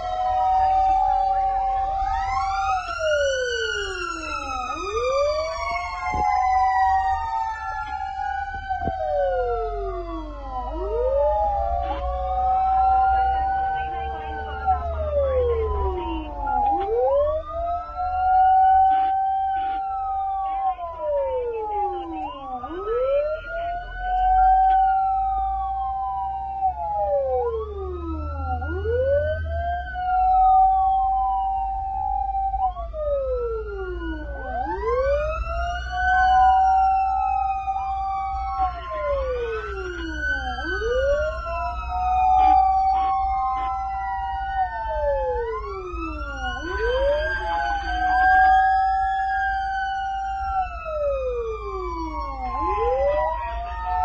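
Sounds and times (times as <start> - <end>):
fire truck siren wailing: 0.0 - 54.0
low engine rumble: 0.0 - 54.0.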